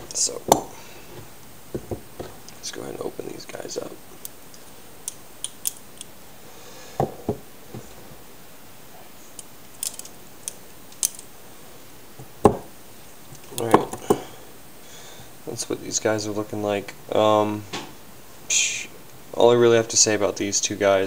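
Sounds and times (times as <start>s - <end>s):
metal clicks of knives handled: 9.4s - 11.3s.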